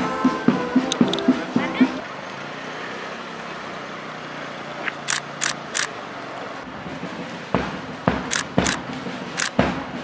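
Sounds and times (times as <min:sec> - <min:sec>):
idling traffic hum: 0:00.0 - 0:10.0.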